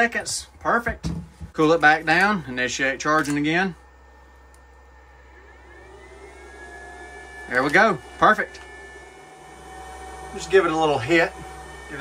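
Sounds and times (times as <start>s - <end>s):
faint electrical hum: 0.0s - 12.0s
power supply high whine: 0.0s - 12.0s.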